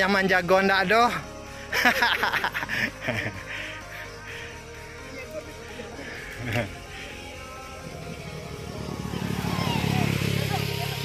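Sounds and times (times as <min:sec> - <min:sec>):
vehicle engine rumbling: 0:03.8 - 0:11.0.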